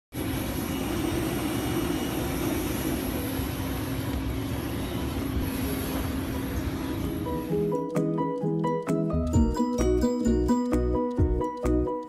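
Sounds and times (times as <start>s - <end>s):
aircraft engines droning: 0.1s - 9.3s.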